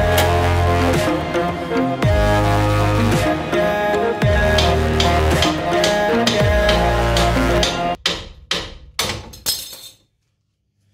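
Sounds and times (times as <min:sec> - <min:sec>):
hammer striking steel: 0:04.4 - 0:09.9.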